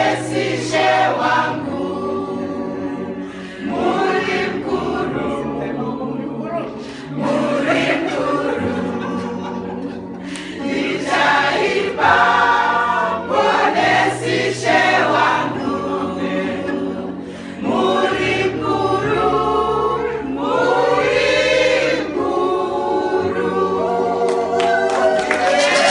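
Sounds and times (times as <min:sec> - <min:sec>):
women's choir singing: 0:00.0 - 0:25.9.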